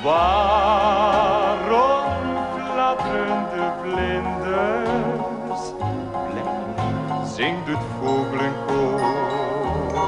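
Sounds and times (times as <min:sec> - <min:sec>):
light orchestral ballad music: 0:00.0 - 0:10.0.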